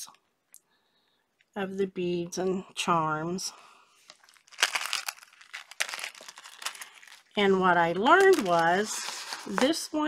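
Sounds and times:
plastic packets crinkling: 4.0 - 10.0.

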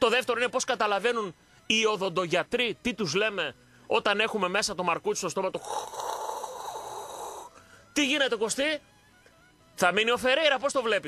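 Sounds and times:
steady air hiss: 5.6 - 8.0.

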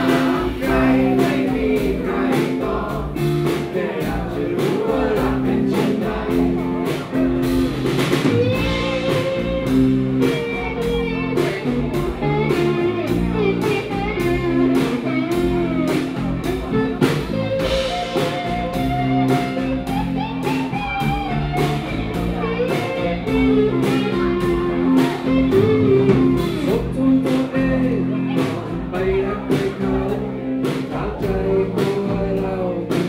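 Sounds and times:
sustained guitar chords: 0.0 - 30.6
drum kit beat: 0.0 - 33.0
guitar lead lines: 0.0 - 33.0.

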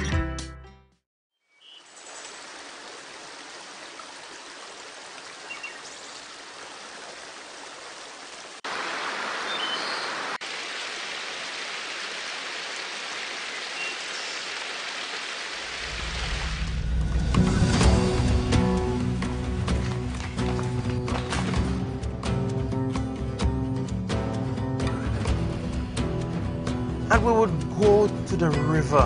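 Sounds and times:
river running over rocks: 2.0 - 16.7.

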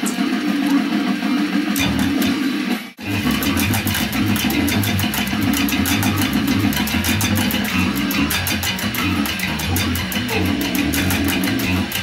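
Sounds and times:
electric bass fast plucked notes: 1.8 - 2.4, 3.0 - 12.0.

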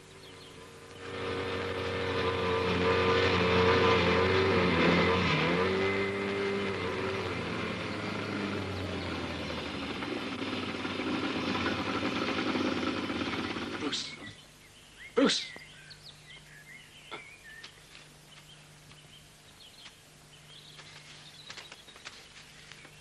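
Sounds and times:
motorboat engine running: 0.0 - 14.4.

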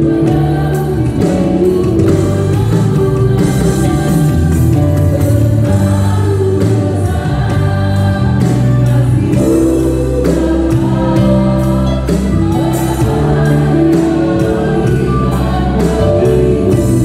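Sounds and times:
worship band playing gospel: 0.0 - 17.0.

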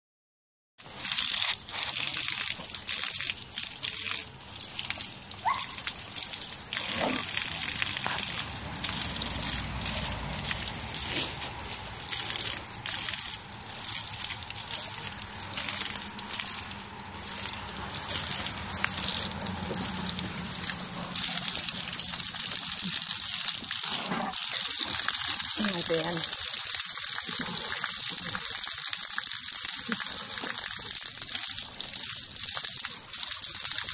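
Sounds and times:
garden hose water splashing: 0.8 - 33.9.

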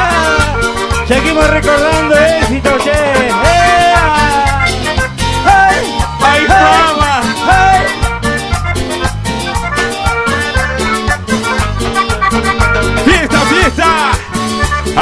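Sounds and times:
accordion: 0.0 - 15.0
live cumbia band music: 0.0 - 15.0.

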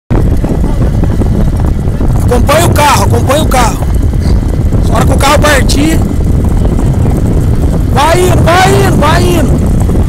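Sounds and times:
car driving rumble: 0.1 - 10.0.

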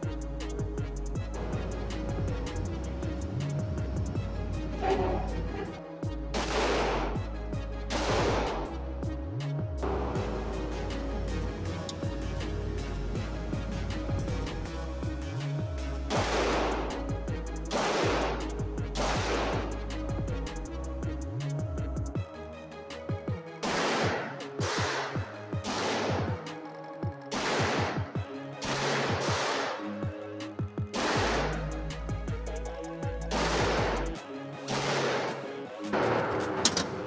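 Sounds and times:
electronic music with bass: 0.0 - 22.2, 31.2 - 34.2
pistol shots ringing indoors: 6.3 - 7.2, 7.9 - 8.7, 16.1 - 16.9, 17.7 - 19.7, 23.6 - 26.3, 27.3 - 28.0, 28.6 - 29.8, 31.0 - 31.6, 34.7 - 37.0.

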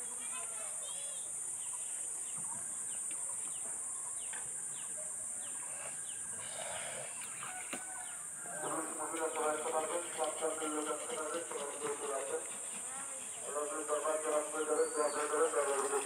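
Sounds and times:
birds chirping: 0.3 - 16.0.

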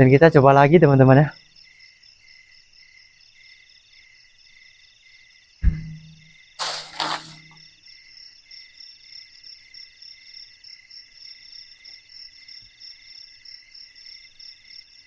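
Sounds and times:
insects chirping: 0.1 - 15.0
sharp thump: 5.6 - 7.6
short rustling: 6.6 - 7.6.

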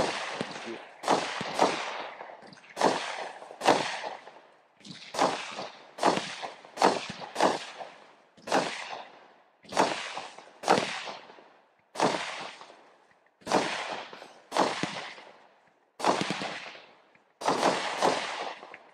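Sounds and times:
fireworks bangs: 0.0 - 1.9.

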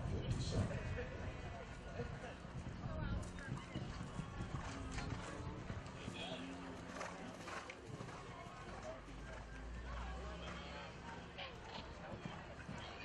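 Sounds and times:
horse hoofbeats on soft dirt: 0.0 - 13.0.

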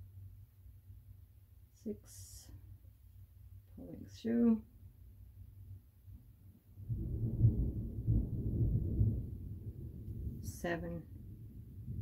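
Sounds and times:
faint low hum: 0.0 - 12.0
distant thunder rumbling: 6.8 - 12.0.

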